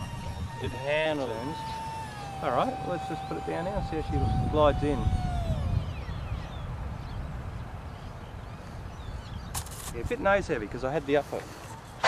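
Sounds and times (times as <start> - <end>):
electric fan whine spinning down: 0.0 - 10.5
wind rumbling on microphone: 0.0 - 12.0
scratchy rustle: 9.6 - 10.2.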